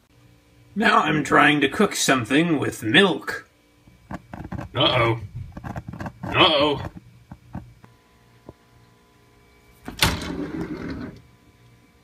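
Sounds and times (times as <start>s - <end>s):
wooden drawer sliding open: 9.9s - 11.2s.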